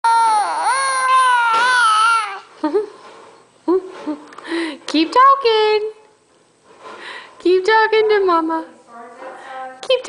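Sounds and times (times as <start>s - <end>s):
infant crying: 0.0s - 2.5s.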